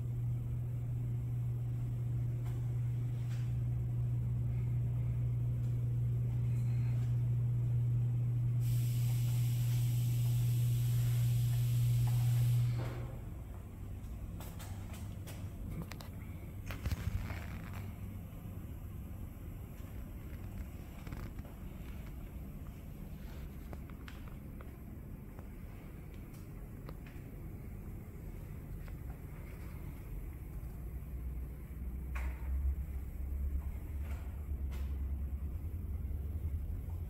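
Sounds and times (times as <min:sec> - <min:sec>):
low machine hum: 0:00.0 - 0:37.0
hiss: 0:08.6 - 0:13.0.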